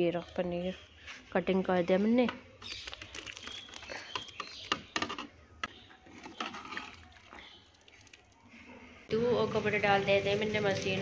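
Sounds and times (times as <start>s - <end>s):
ladle stirring gravy: 2.6s - 9.1s.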